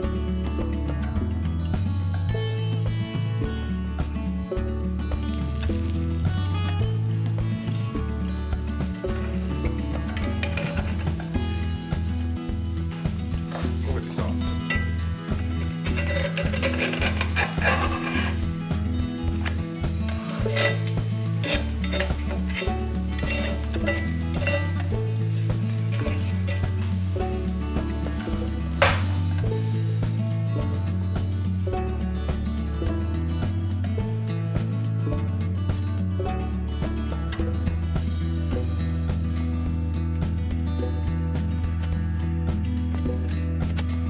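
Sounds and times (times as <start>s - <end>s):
background music with bass: 0.0s - 44.0s
pancake batter sizzling: 5.2s - 30.2s
metal spatula scraping pan: 9.9s - 11.3s, 14.6s - 29.1s
spatula clinking on metal plate: 15.8s - 18.4s, 20.3s - 24.9s.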